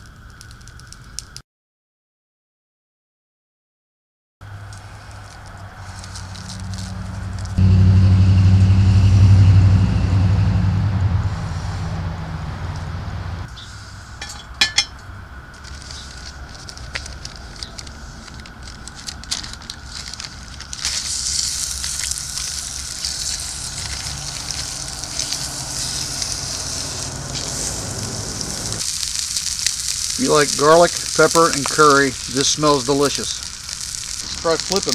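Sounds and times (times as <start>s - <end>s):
meat sizzling in a pan: 4.7s - 7.6s, 15.6s - 34.9s
loud low rumble: 6.6s - 13.5s, 23.0s - 28.8s.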